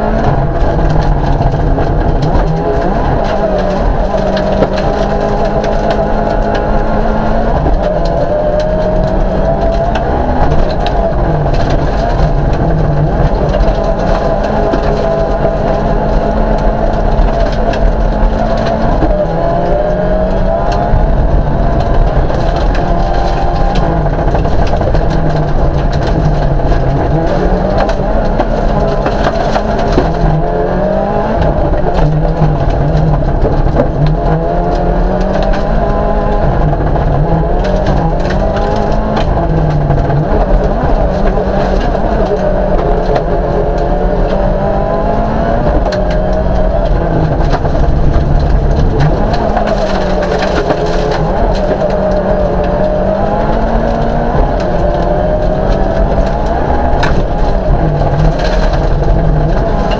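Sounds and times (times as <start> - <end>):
knocks and rattles: 0.0 - 59.9
race car engine revving: 0.0 - 59.9.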